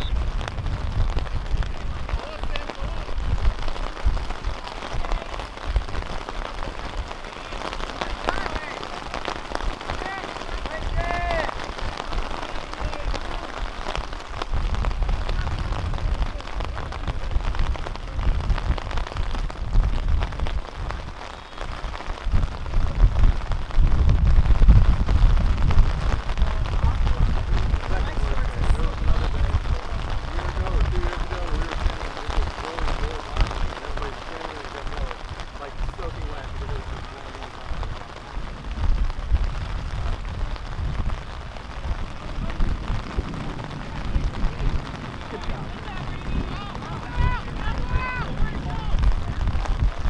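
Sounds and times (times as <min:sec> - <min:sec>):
low rumble on microphone: 0:00.0 - 0:50.0
rain hiss: 0:00.0 - 0:50.0
distant shouts: 0:03.8 - 0:14.2, 0:43.9 - 0:49.7.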